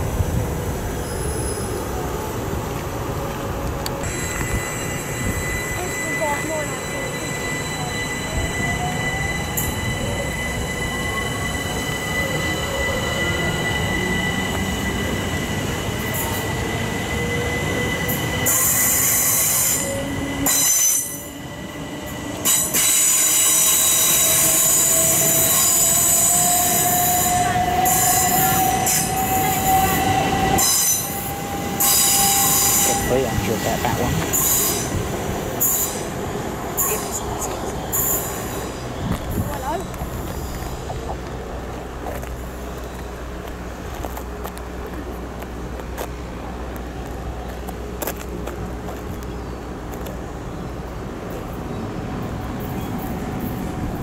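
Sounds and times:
high-pitched wheel squeal: 0:04.0 - 0:33.6.

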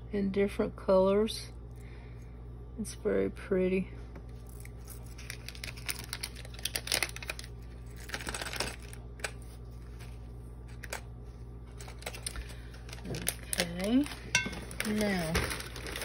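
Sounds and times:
steady low hum: 0:00.0 - 0:16.0
plastic bag crinkling: 0:04.3 - 0:11.0, 0:11.6 - 0:16.0.

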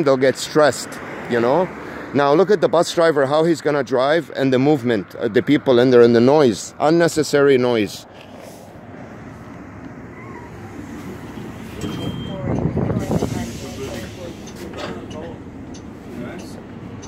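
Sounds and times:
bus engine and road noise: 0:00.0 - 0:17.0.

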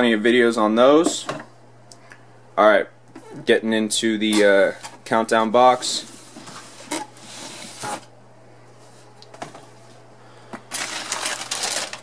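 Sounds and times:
tissue paper rustling: 0:10.7 - 0:12.0.

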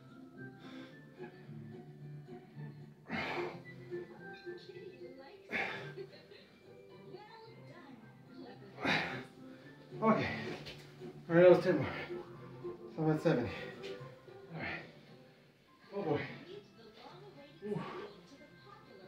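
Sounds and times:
tv show with music: 0:00.0 - 0:19.0.

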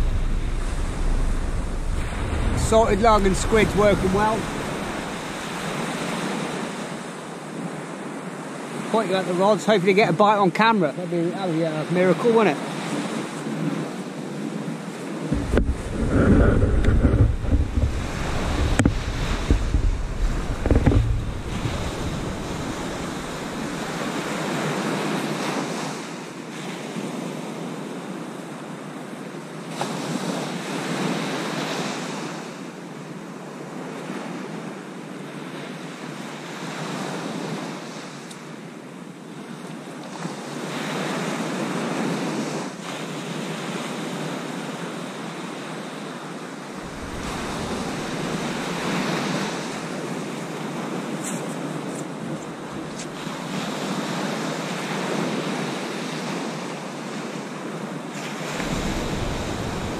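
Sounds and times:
wind buffeting microphone: 0:00.0 - 0:06.8, 0:15.0 - 0:24.8, 0:46.8 - 0:54.3, 0:58.4 - 0:59.9
small waves breaking on sand: 0:00.0 - 0:59.9
light knocks: 0:15.4 - 0:23.8.

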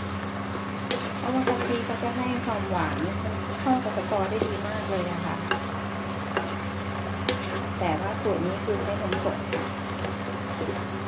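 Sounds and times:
light sizzle: 0:00.0 - 0:11.0
steady low hum: 0:00.0 - 0:11.0
spatula scraping wok: 0:00.5 - 0:11.0
spatula knocking on pan: 0:05.4 - 0:05.7, 0:06.3 - 0:06.6, 0:09.0 - 0:10.7.

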